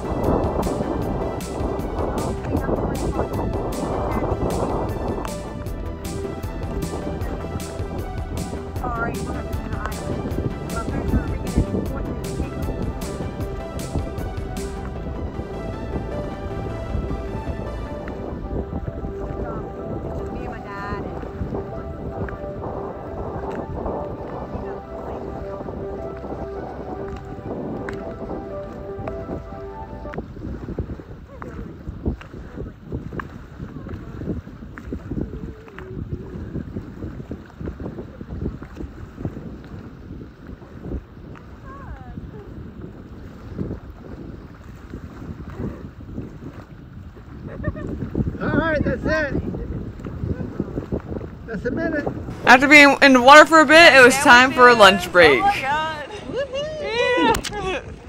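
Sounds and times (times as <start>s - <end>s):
music: 0.0s - 30.9s, 52.3s - 56.0s
small waves lapping: 0.0s - 58.0s
wind buffeting microphone: 0.0s - 58.0s.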